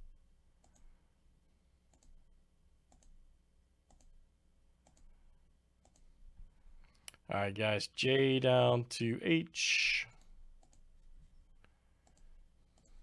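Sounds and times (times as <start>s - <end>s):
computer mouse clicks: 0.6s - 0.9s, 1.9s - 2.2s, 2.9s - 3.2s, 3.9s - 4.2s, 4.8s - 5.1s, 5.8s - 6.1s, 10.1s - 10.9s, 11.6s - 13.0s.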